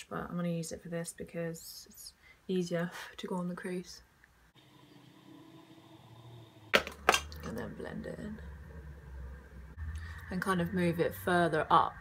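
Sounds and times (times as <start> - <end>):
sharp knock: 6.8 - 7.3.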